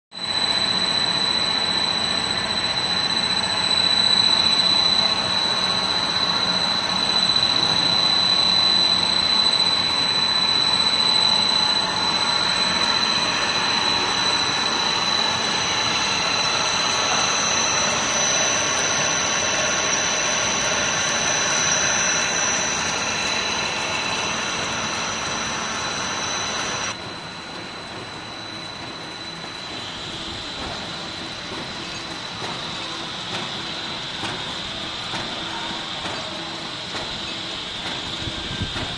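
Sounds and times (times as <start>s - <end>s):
constant high whine: 0.1s - 38.9s
higher machine whine: 0.1s - 38.9s.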